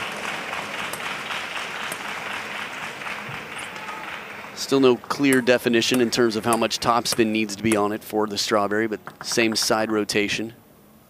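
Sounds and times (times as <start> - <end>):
crowd applauding: 0.0 - 6.6.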